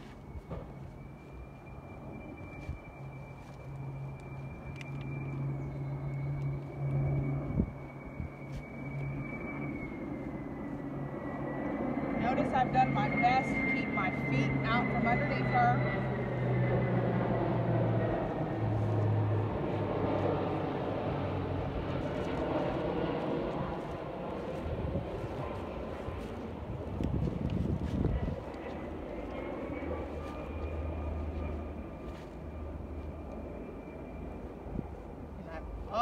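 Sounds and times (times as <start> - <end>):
distant engine droning: 0.0 - 36.0.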